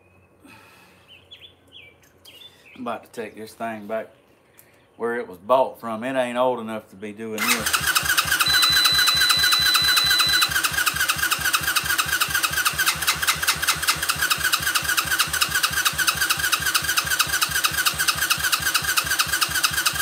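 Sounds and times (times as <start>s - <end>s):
engine cranking on starter: 7.4s - 20.0s.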